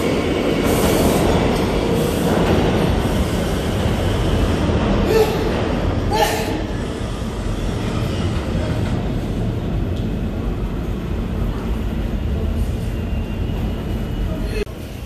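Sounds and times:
subway train rumbling: 0.0 - 15.0.

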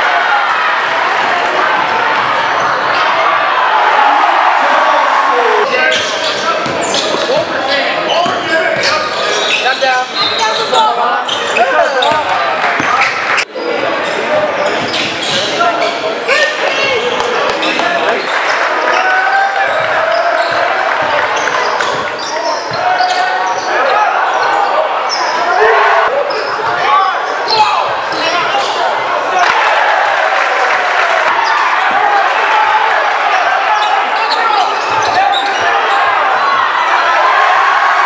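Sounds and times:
echoing crowd and player voices: 0.0 - 38.0.

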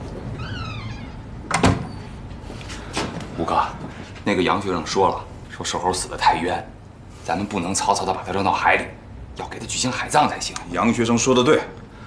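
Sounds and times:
door slamming: 0.4 - 2.0.

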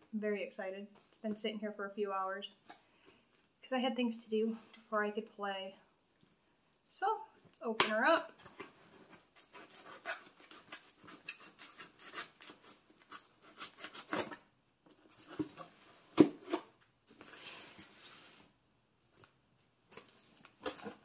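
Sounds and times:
scissors cutting packing tape: 9.3 - 14.4.

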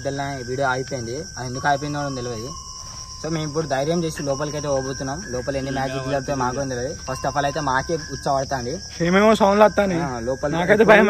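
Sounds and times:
crickets chirping: 0.0 - 11.0
man talking: 3.2 - 11.0.

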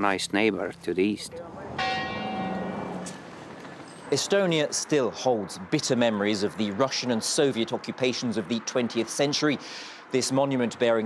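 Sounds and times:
tower bell ringing: 1.8 - 4.2.

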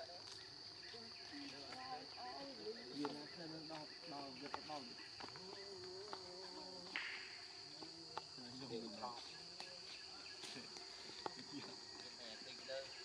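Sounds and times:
forest insects droning: 0.0 - 13.0.

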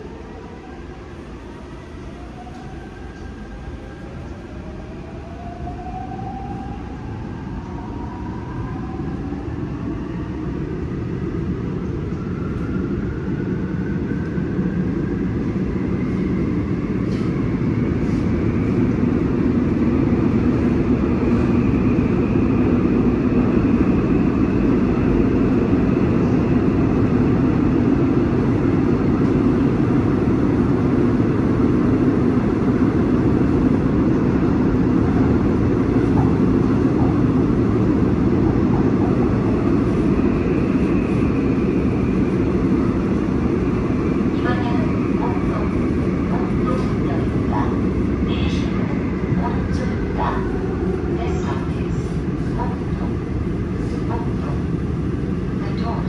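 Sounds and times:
train wheels rumbling on rail: 8.9 - 56.0.

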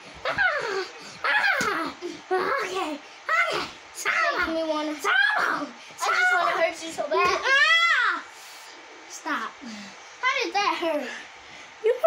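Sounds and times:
child whining cries: 0.2 - 2.7.

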